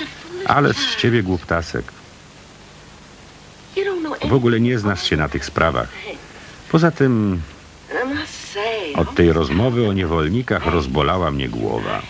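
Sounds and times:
person speaking: 0.0 - 2.0, 3.8 - 12.0
background hiss: 0.0 - 12.0.

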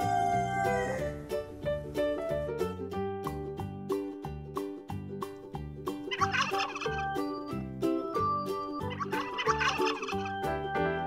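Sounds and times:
turkey gobbling: 0.0 - 1.2, 6.1 - 7.4, 8.8 - 10.4
background music with steady beat: 0.0 - 11.0.

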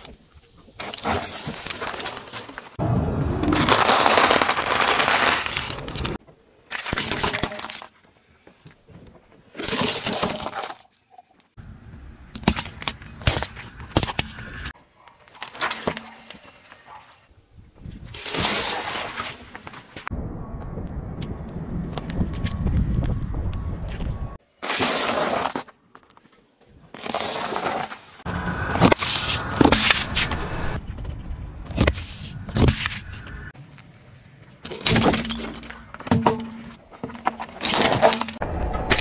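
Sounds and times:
tyre crushing plastic tubes: 3.4 - 11.2, 34.7 - 39.0.

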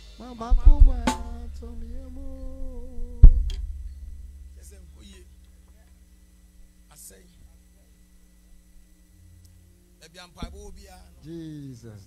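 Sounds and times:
person humming a held note: 0.0 - 5.3
bass drum hit: 0.4 - 5.7, 10.4 - 11.2.

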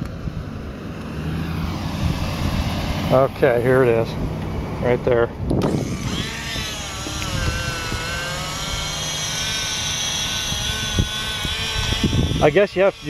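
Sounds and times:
electric motor whining: 0.0 - 13.0.

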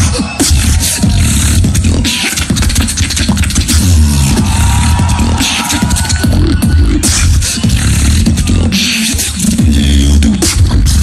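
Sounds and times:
person beatboxing into microphone: 0.0 - 11.0.

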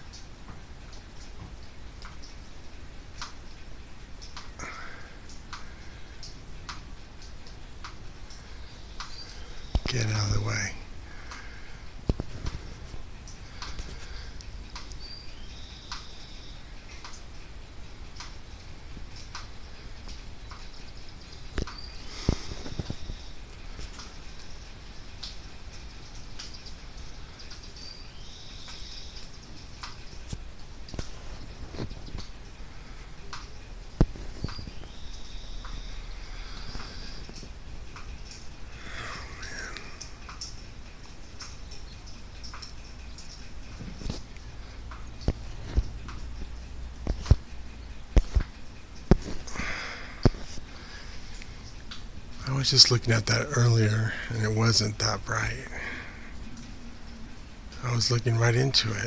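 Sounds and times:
birds calling: 3.4 - 59.0.

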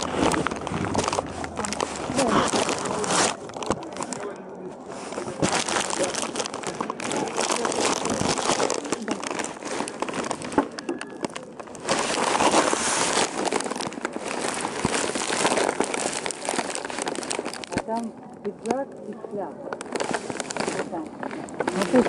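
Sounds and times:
muffled voices: 0.0 - 12.8, 17.6 - 22.0
loud rustling and crinkling: 0.0 - 22.0.

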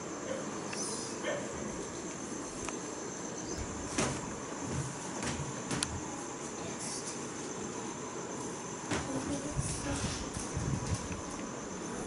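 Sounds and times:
high-pitched hiss: 0.0 - 4.3.

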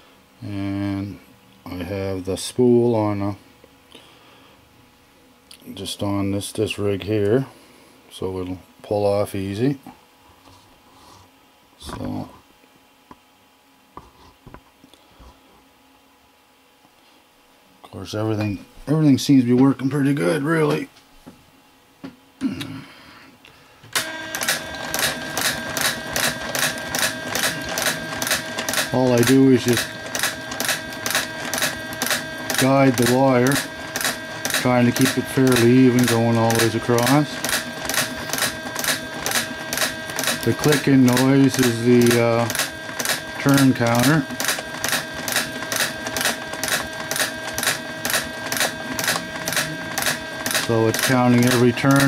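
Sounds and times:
coil winder machine hum: 23.9 - 52.0.

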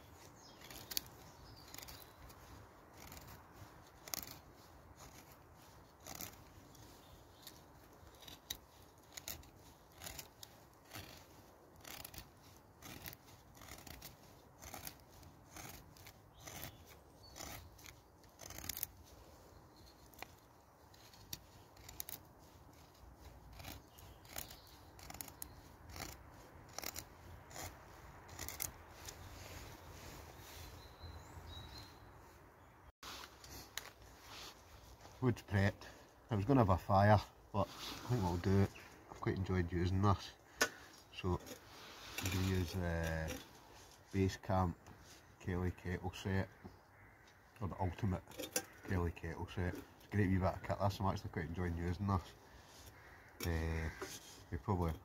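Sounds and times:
knife shaving wood: 0.0 - 30.9, 40.7 - 50.9.

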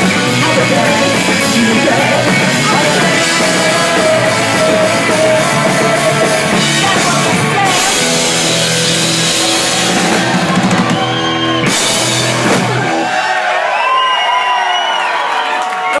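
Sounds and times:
punk rock band playing: 0.0 - 13.5.

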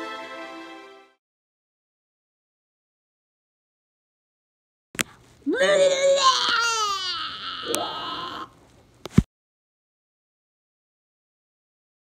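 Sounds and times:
voice wailing: 5.5 - 8.6.

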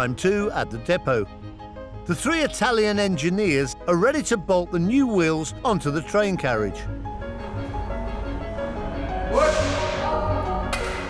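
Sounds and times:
background music sustained notes: 0.0 - 11.0.

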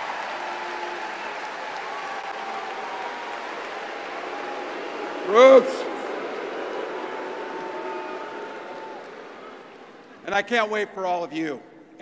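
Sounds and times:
arena crowd applauding and cheering: 0.0 - 11.6.

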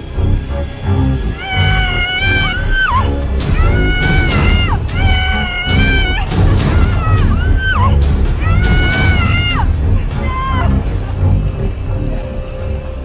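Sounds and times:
background music: 0.0 - 13.0
woman screaming: 1.4 - 9.6, 10.2 - 10.8.

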